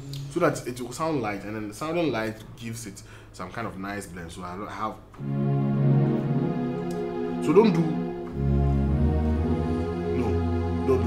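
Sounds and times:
deep bass note: 5.2s - 11.0s
electronic keyboard chord: 5.2s - 11.0s.

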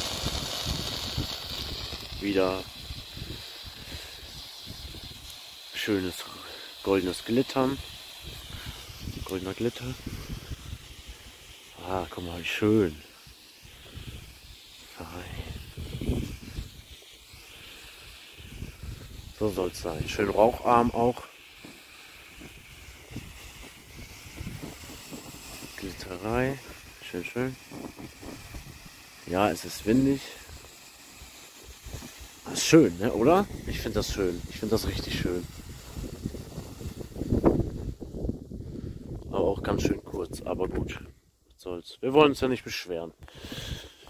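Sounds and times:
wind rumbling on microphone: 0.0s - 5.3s, 7.7s - 11.3s, 13.6s - 14.5s, 15.2s - 16.9s, 18.4s - 21.0s, 22.4s - 29.0s, 33.0s - 41.2s
firework fountain hissing: 0.0s - 41.0s, 41.8s - 44.0s
person speaking: 9.2s - 10.0s, 11.7s - 13.2s, 14.9s - 16.0s, 19.3s - 21.4s, 25.6s - 27.6s, 29.2s - 30.5s, 32.4s - 35.5s.

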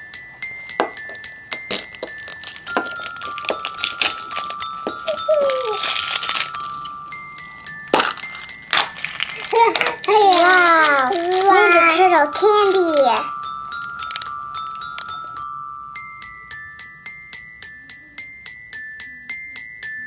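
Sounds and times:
light chime-like music: 0.0s - 20.0s
plastic egg clicking and rattling: 1.5s - 7.0s, 7.9s - 15.3s
small child's voice: 4.9s - 6.0s, 9.4s - 13.4s.

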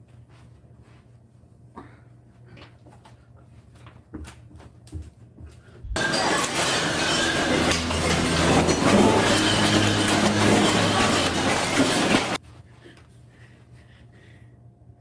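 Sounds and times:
shelves and stock rattling: 5.9s - 12.4s.

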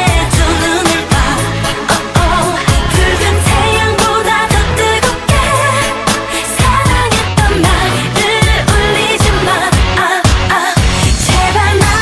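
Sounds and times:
pop song with singing: 0.0s - 12.0s.

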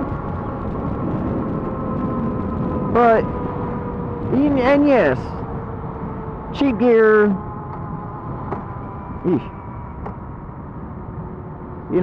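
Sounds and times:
motorcycle engine cruising: 0.0s - 12.0s
road and wind noise: 0.0s - 12.0s.

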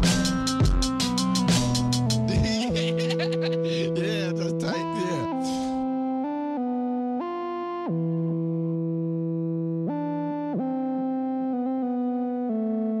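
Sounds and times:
synthesizer chords: 0.0s - 13.0s.

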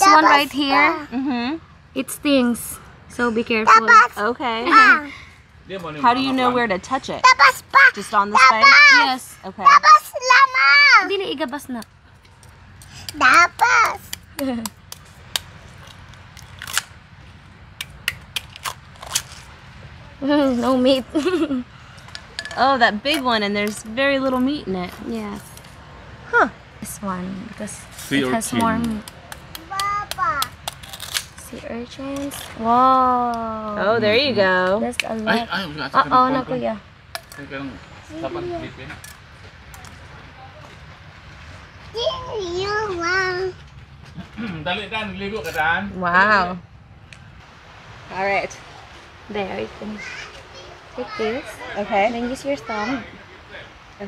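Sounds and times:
child speaking: 0.0s - 1.1s, 3.6s - 5.2s, 7.2s - 11.3s, 13.1s - 14.2s, 28.2s - 30.5s, 38.1s - 38.8s, 41.9s - 43.6s, 49.8s - 51.8s, 52.5s - 53.2s
knife cracking sea urchin shell: 14.1s - 16.9s, 17.8s - 19.4s, 28.8s - 31.4s
sea urchin shells clicking: 17.8s - 19.4s.

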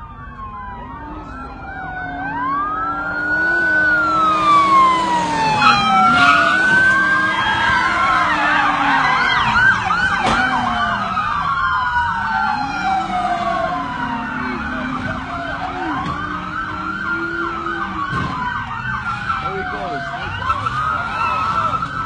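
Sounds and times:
police siren wail: 0.0s - 22.0s
police siren yelp: 0.0s - 22.0s
traffic noise: 0.0s - 22.0s.

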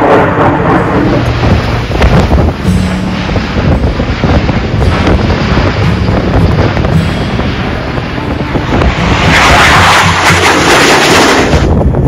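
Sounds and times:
turboprop aircraft flying overhead: 0.0s - 12.0s
wind buffeting microphone: 0.0s - 12.0s.

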